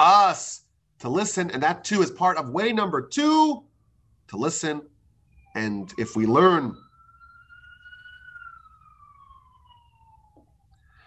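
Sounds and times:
faint siren wail: 0:01.9 - 0:11.0.

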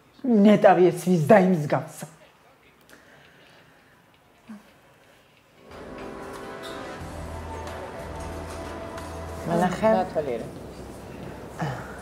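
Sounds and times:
person talking: 0:09.4 - 0:10.6.

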